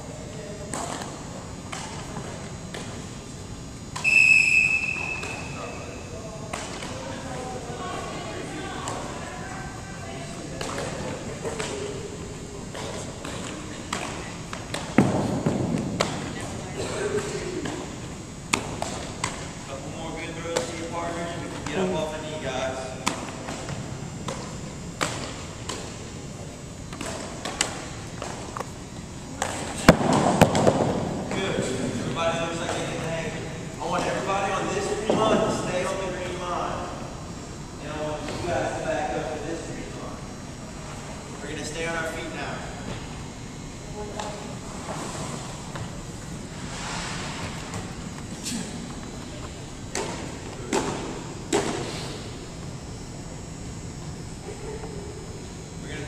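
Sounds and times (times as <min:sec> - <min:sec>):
students talking: 0:03.8 - 0:14.7, 0:16.0 - 0:18.5
balls bouncing on hardwood floor: 0:29.4 - 0:31.4.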